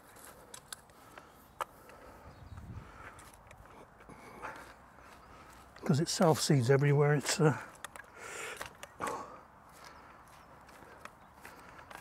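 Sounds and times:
rustling in soil and weeds: 0:00.0 - 0:12.0
hand tool clicks: 0:07.2 - 0:09.2.

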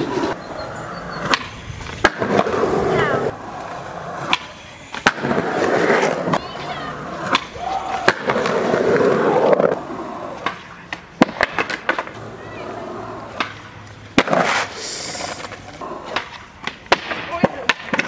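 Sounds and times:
skateboard wheels rolling on concrete: 0:00.0 - 0:18.0
skateboard slapping down: 0:01.2 - 0:12.3, 0:13.3 - 0:18.0
skateboard tail popping: 0:01.2 - 0:12.3, 0:13.3 - 0:18.0.

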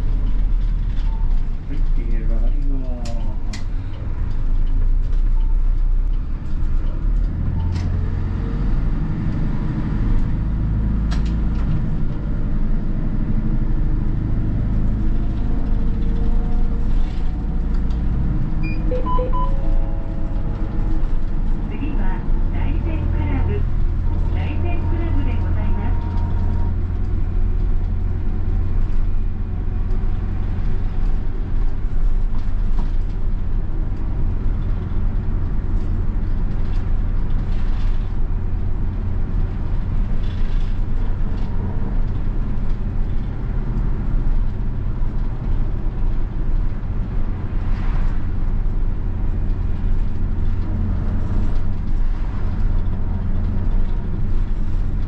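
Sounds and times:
bus diesel engine: 0:00.0 - 0:55.0
road noise: 0:00.0 - 0:55.0.

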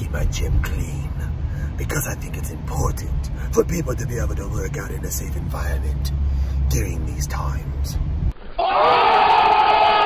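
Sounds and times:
crowd: 0:08.5 - 0:10.0.

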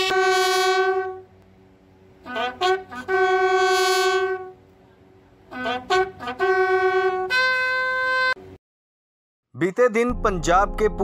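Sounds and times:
bugle long held note: 0:00.0 - 0:01.3, 0:02.2 - 0:04.6, 0:05.5 - 0:08.6.

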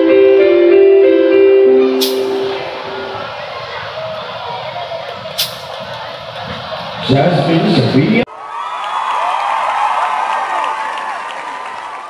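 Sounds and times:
electronic keyboard piano piece: 0:00.0 - 0:04.1
crowd hubbub in a hall: 0:01.9 - 0:12.0.

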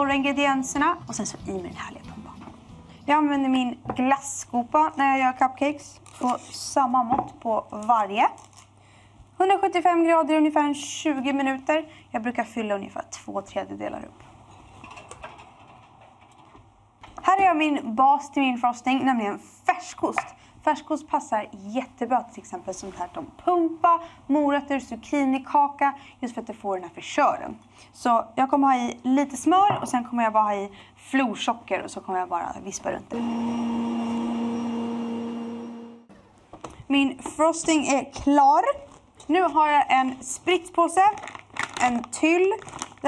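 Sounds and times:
stand mixer motor humming: 0:33.2 - 0:36.0.

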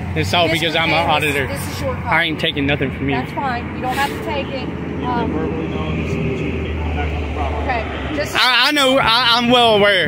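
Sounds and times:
road traffic rumble: 0:00.0 - 0:10.0.

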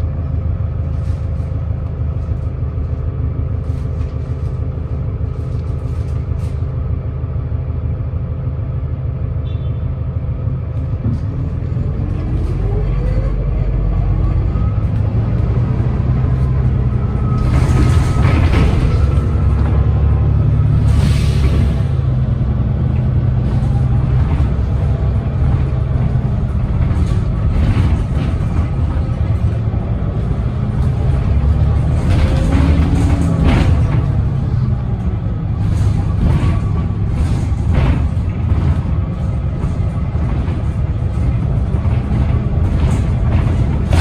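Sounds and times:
bus engine hum with whine: 0:00.0 - 0:44.0
bus body rattles and knocks: 0:10.4 - 0:44.0.

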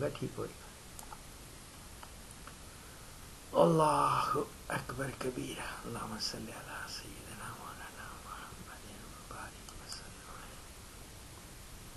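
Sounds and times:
man murmuring quietly: 0:03.6 - 0:10.7.

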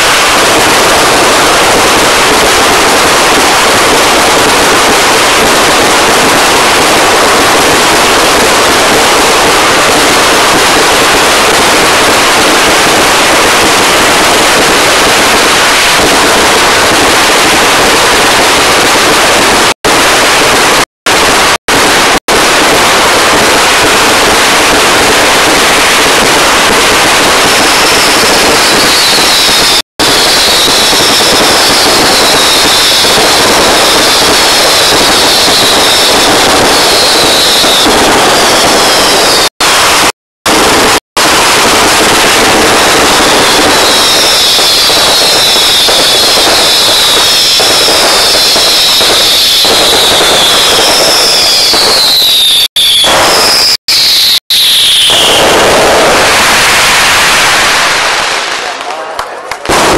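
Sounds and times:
fireworks and firecrackers: 0:00.0 - 0:59.9
high falling whistles: 0:27.8 - 0:31.8, 0:43.3 - 0:58.0.

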